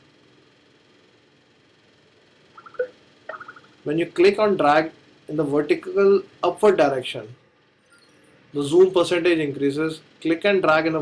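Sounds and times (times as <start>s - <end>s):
man speaking: 8.6s - 11.0s.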